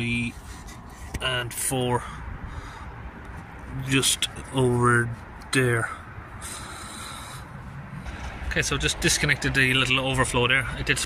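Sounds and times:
rubber hose rubbing and handling: 0.0s - 1.3s.

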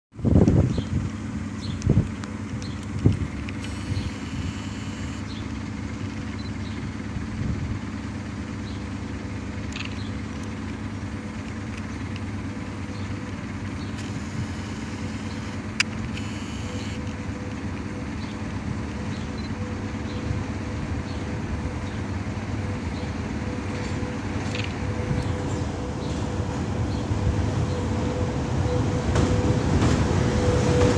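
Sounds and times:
electric train hum: 0.1s - 30.9s.

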